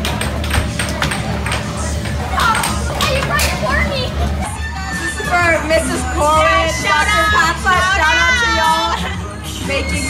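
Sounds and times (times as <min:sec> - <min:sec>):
children's excited voices: 0:02.3 - 0:09.0.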